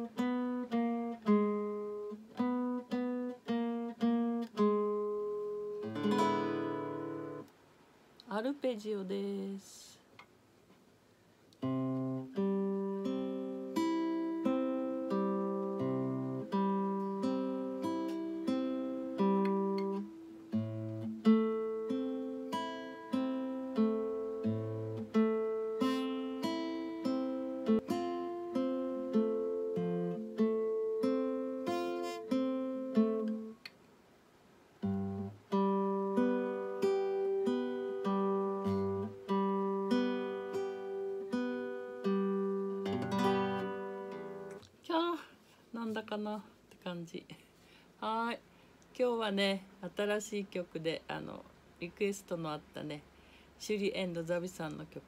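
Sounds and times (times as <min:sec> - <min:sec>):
fingerpicked acoustic guitar: 0:00.0 - 0:07.5, 0:11.5 - 0:34.0, 0:34.7 - 0:46.0.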